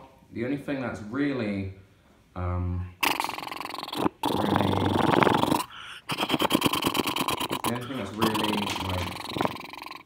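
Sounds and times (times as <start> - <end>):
tv static crackling buzz: 3.1 - 10.0.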